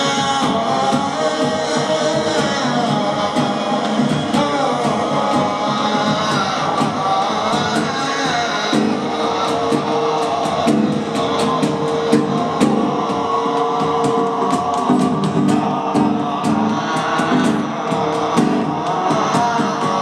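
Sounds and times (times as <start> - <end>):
drums steady beat: 0.0 - 20.0.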